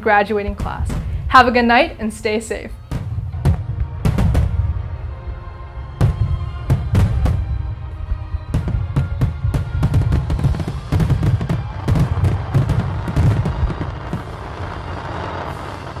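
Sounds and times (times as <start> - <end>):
fireworks crackle: 8.6 - 16.0
fireworks shells bursting: 10.3 - 16.0.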